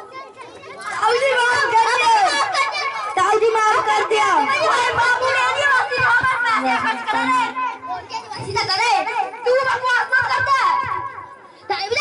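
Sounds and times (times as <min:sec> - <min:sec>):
children talking and calling out: 0:00.0 - 0:12.0.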